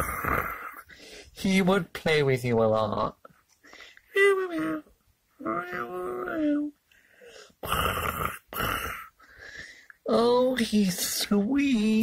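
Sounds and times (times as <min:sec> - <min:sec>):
person imitating animal calls: 0:00.0 - 0:00.8, 0:04.1 - 0:06.8.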